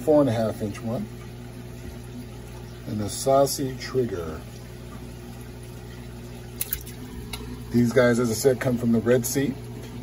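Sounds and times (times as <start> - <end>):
water moving in tub: 0.0 - 10.0
fish splashing into water: 6.4 - 7.6.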